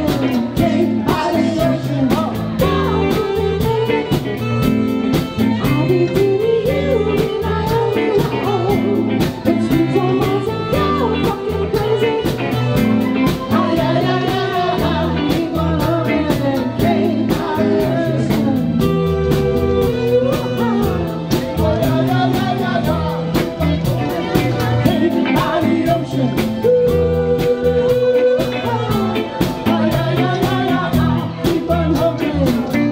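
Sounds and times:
band playing pop-rock song: 0.0 - 32.9
saxophone: 0.0 - 32.9
woman singing: 0.0 - 32.9.

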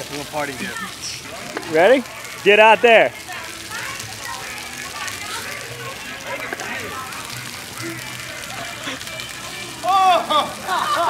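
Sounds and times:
faint voices of people: 0.0 - 11.0
fountain jets splattering on paving: 0.0 - 11.0.

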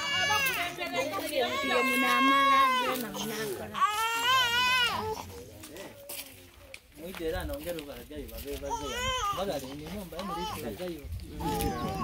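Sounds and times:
low voices talking: 0.0 - 12.0.

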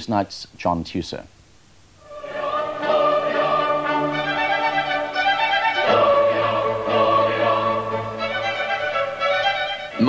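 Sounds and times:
choir with orchestra: 2.0 - 10.0.

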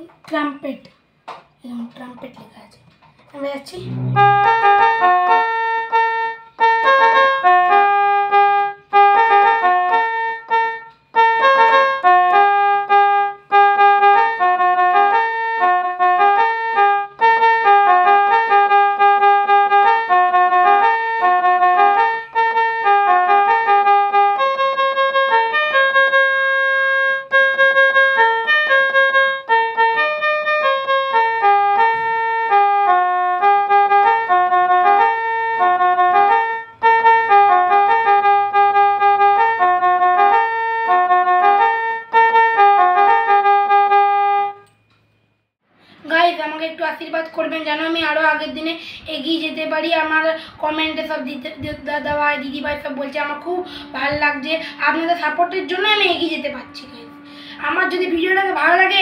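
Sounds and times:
toy keyboard trumpet melody: 3.8 - 44.9, 50.0 - 59.0.

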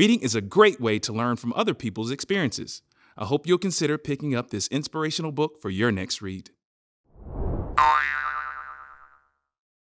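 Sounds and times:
cartoon boing twang: 7.8 - 9.3.

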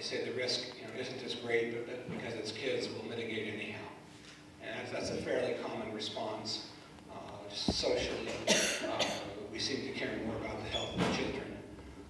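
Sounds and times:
indistinct talk in a room: 0.0 - 11.8
person coughing: 8.3 - 9.4.

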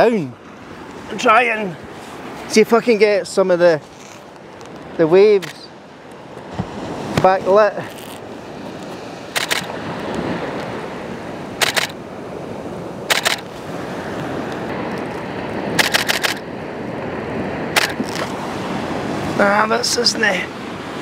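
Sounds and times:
surf on beach: 0.0 - 21.0
camera shutter firing: 9.4 - 9.7, 11.6 - 12.0, 13.1 - 13.5, 15.8 - 16.4, 17.8 - 18.2.

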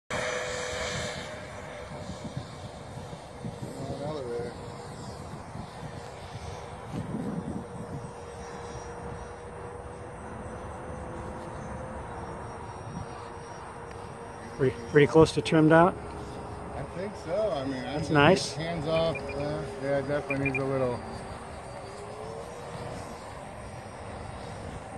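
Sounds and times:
model jet engine whine: 0.1 - 24.9.

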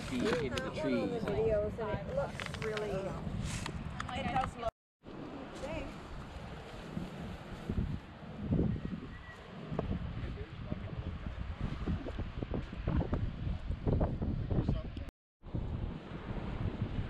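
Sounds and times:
wind buffeting microphone: 0.0 - 4.7, 5.5 - 17.0.

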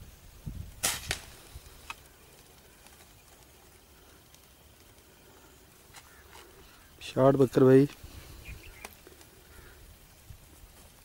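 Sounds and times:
weaker crack: 0.7 - 2.1
air rifle shot crack: 0.8 - 1.4
faint clicks: 1.7 - 6.8, 8.6 - 9.6.

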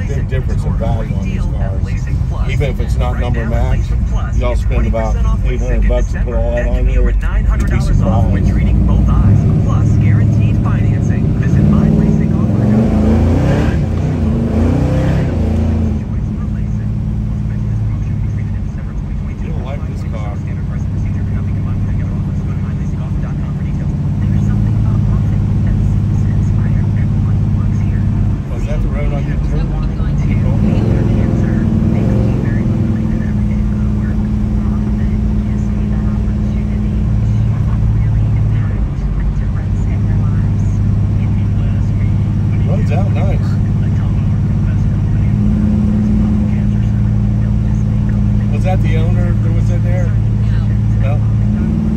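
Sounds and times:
car engine accelerating: 0.0 - 51.9.

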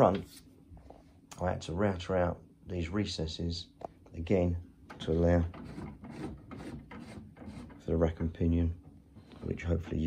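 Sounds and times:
rubbing and scuffing: 0.0 - 0.6.

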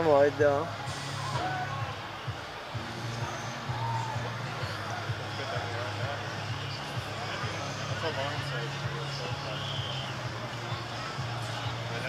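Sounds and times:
background music: 0.0 - 12.0
distant crowd chatter: 0.0 - 12.0.

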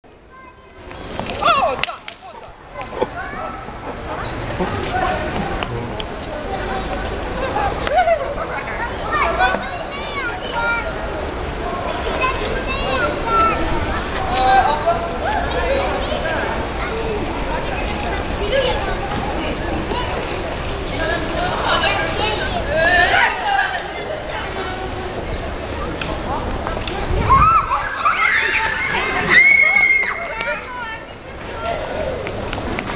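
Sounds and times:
outdoor background noise: 0.0 - 32.9
children calling out and chattering: 0.1 - 32.9.

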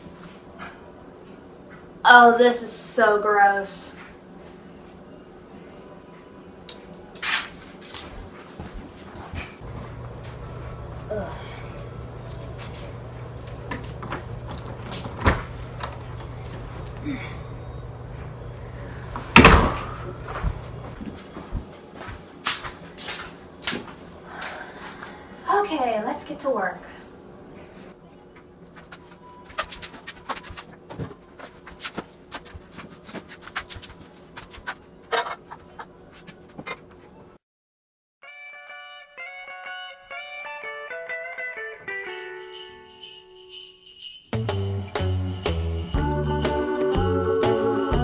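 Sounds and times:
faint steady hum: 9.6 - 29.4.

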